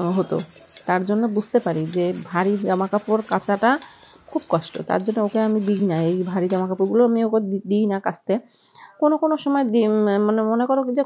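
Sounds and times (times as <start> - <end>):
rubbing scrubbing noise: 0.0 - 7.1
woman speaking: 0.0 - 8.4, 9.0 - 11.0.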